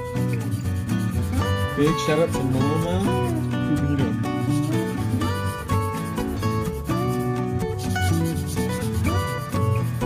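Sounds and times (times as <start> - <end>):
guitar music: 0.0 - 10.0
nail file rubbing on nail: 0.2 - 3.4, 4.2 - 10.0.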